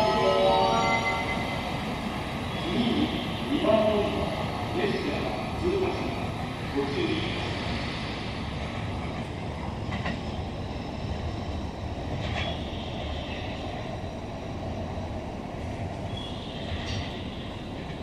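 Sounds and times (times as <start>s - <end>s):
electric train rumbling: 0.0s - 18.0s.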